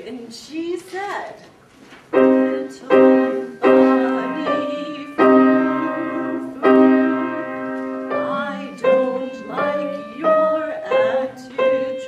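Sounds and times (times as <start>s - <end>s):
grand piano chords: 2.1s - 12.0s.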